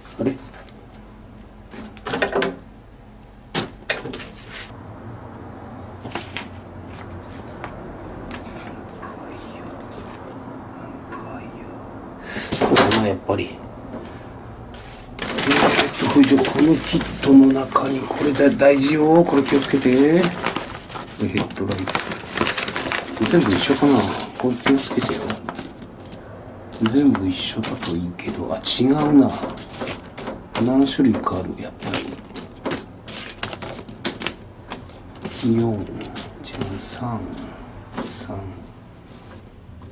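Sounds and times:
rustling and rummaging: 0:14.8 - 0:38.3
small parts clattering: 0:15.2 - 0:38.2
small parts clicking and clattering: 0:29.0 - 0:35.4.

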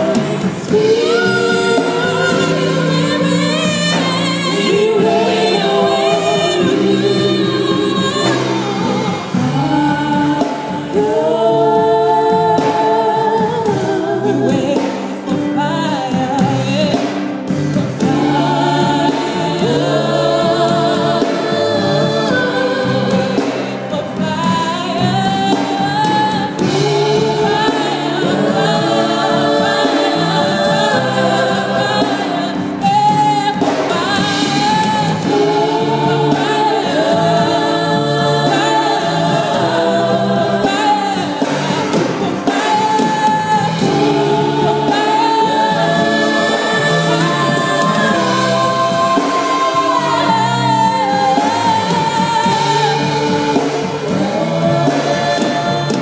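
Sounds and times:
backing singers: 0:00.0 - 0:56.0
band accompanying: 0:00.0 - 0:56.0
woman singing gospel lead: 0:00.0 - 0:56.0.

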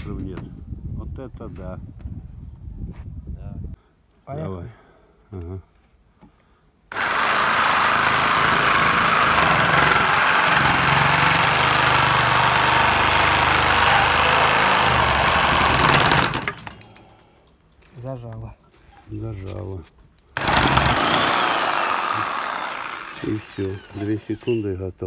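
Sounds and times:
reciprocating saw cutting metal pipe: 0:06.9 - 0:17.0, 0:20.4 - 0:24.7.

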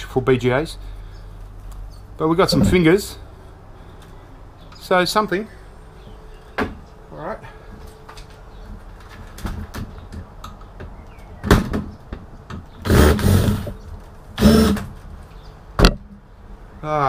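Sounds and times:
cordless drill motor whirring: 0:14.4 - 0:14.9.

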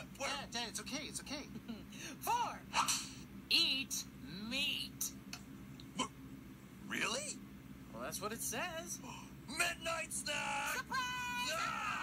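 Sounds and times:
high-pitched vocal cries: 0:10.4 - 0:12.0.

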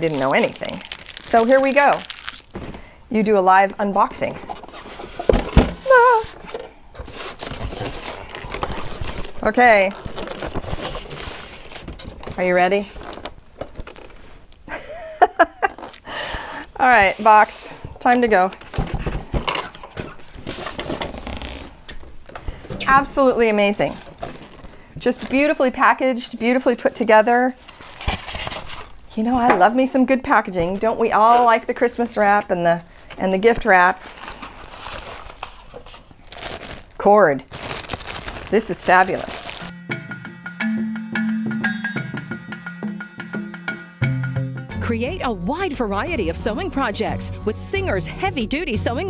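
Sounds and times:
packaging rustling and scraping: 0:00.0 - 0:02.9, 0:04.2 - 0:14.6, 0:15.6 - 0:16.1, 0:16.9 - 0:25.9, 0:27.4 - 0:29.0, 0:30.7 - 0:39.7
person laughing: 0:14.7 - 0:15.9.

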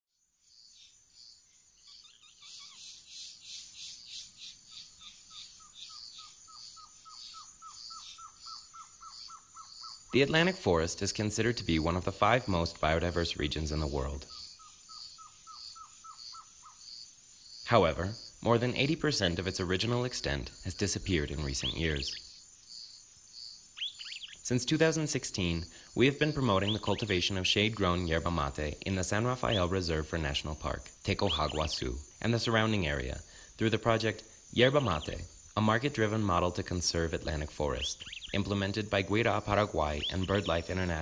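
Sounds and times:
insect chorus pulsing: 0:00.1 - 0:41.0
soft chirps: 0:00.3 - 0:10.3, 0:20.5 - 0:27.3, 0:30.7 - 0:34.0, 0:37.3 - 0:41.0
bird calling in falling notes: 0:37.8 - 0:41.0.

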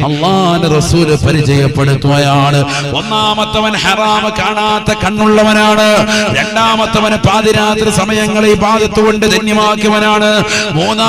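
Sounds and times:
man preaching through microphone: 0:00.0 - 0:11.0.

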